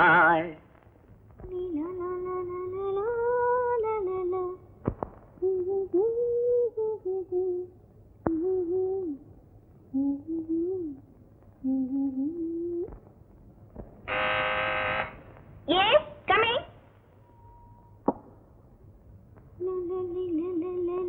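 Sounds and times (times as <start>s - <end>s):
woman humming a slow tune: 8.3s - 9.3s, 9.9s - 13.0s
loud buzz-like tone: 14.1s - 15.3s.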